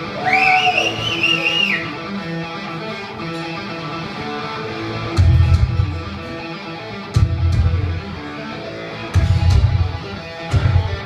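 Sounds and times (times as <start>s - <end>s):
high wavering whistle: 0.0s - 2.0s
rock music over loudspeakers: 0.0s - 11.0s.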